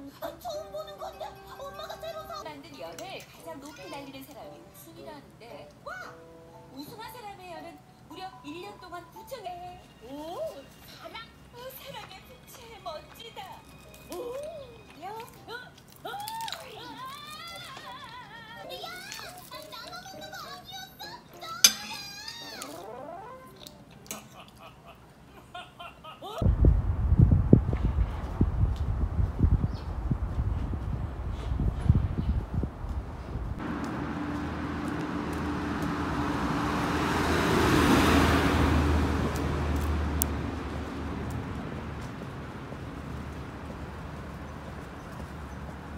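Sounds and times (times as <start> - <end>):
music: 0.0 - 24.4
low engine hum: 26.4 - 45.9
road noise: 26.4 - 45.9
car passing: 33.3 - 45.9.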